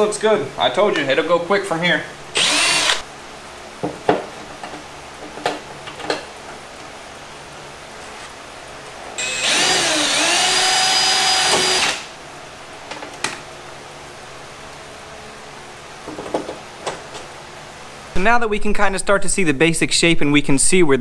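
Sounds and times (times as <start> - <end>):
power drill boring: 2.4 - 3.0, 9.2 - 12.1.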